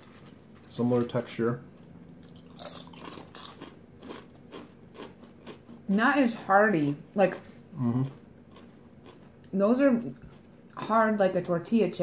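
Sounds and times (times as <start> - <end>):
people chewing crisp chips: 0.0 - 1.4, 2.2 - 6.0, 7.7 - 10.9.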